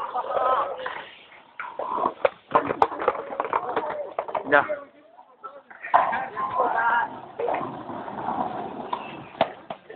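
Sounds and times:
skateboard wheels rolling on concrete: 0.0s - 9.9s.

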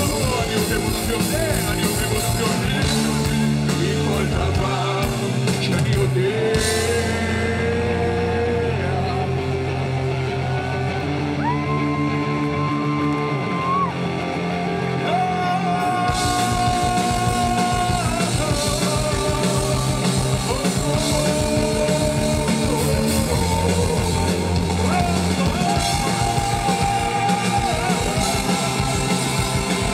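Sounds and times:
bass and keyboard: 0.0s - 29.9s
drums: 0.0s - 29.9s.

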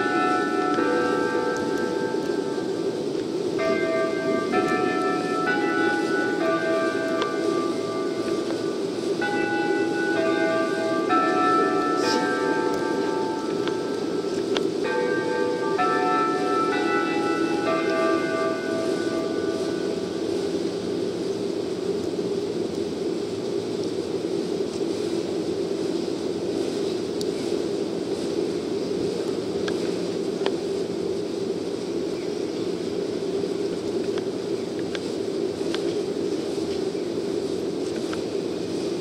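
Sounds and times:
bell-like chime melody: 0.0s - 2.9s, 3.5s - 20.3s
diesel railcar rumble: 0.0s - 39.0s.

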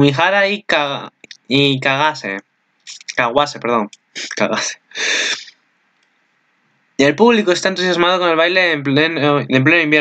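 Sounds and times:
man breathing into microphone: 4.9s - 5.5s.

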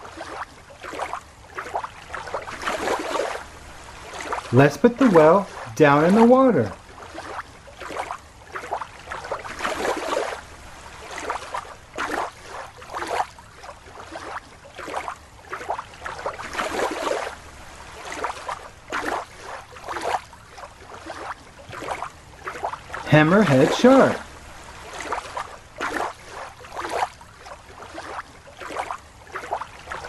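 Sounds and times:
water splashing and sloshing: 0.0s - 30.0s.

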